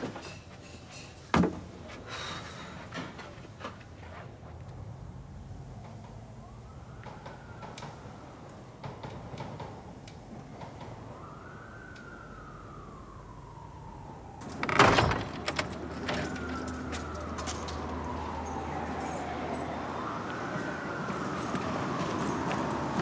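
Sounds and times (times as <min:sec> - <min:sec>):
distant siren wailing: 0:04.8 - 0:23.0
loud bang and rattle: 0:14.6 - 0:16.2.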